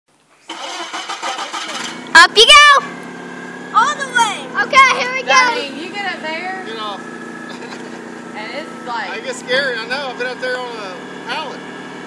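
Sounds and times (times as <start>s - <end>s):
forklift engine running: 0.4s - 12.0s.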